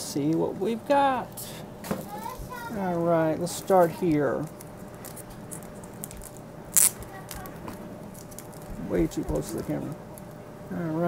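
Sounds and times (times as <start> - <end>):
plastic card sleeve handling: 3.9 - 10.3.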